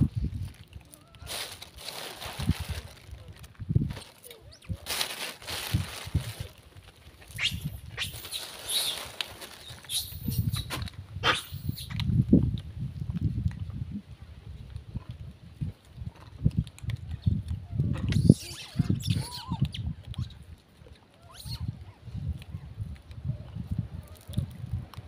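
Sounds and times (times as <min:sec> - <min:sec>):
rustling: 0:00.0 - 0:10.9
monkeys squealing and shrieking: 0:07.4 - 0:09.1, 0:09.7 - 0:12.0, 0:18.1 - 0:20.3, 0:21.2 - 0:21.8.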